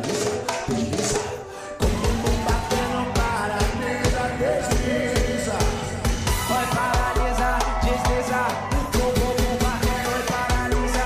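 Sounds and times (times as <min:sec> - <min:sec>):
band music with drum beat: 0:00.0 - 0:11.0.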